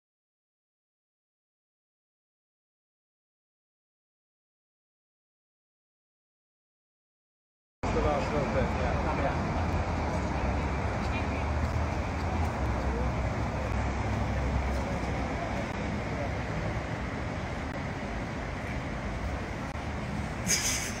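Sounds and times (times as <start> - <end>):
low engine hum: 7.8 - 21.0
traffic rumble: 7.8 - 21.0.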